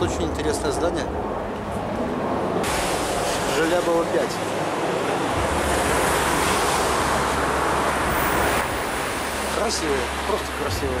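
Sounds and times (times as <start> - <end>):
loud rushing noise with rumble: 0.0 - 11.0.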